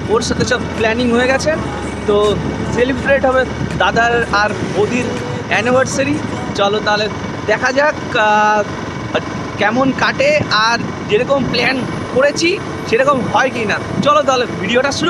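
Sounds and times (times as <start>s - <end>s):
low steady hum: 0.0s - 15.0s
motorbike riding on a road: 0.0s - 15.0s.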